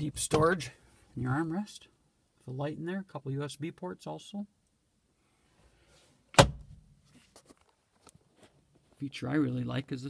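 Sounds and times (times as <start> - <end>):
plastic lid thunk: 6.4 - 6.7.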